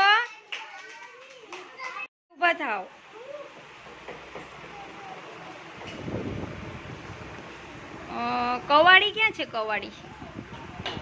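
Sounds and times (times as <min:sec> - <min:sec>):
young children talking: 0:04.6 - 0:05.7.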